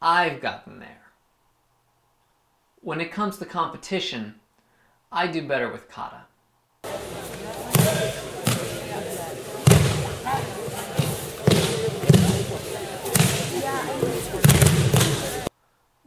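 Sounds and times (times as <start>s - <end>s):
voices calling out: 6.8s - 15.5s
thuds of bodies on mats: 6.9s - 15.5s.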